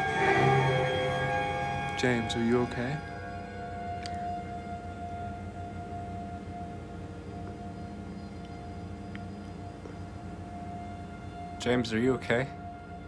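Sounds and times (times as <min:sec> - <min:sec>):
steady tone: 0:00.0 - 0:11.8
low droning hum: 0:00.0 - 0:13.0.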